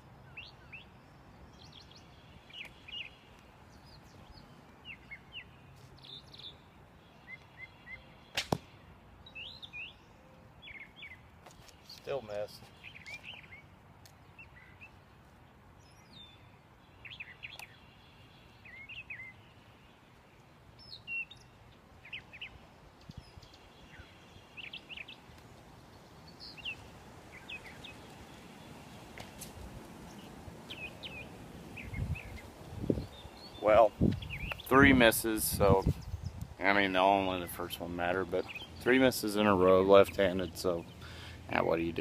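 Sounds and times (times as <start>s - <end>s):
small birds chirping: 0.0s - 42.0s.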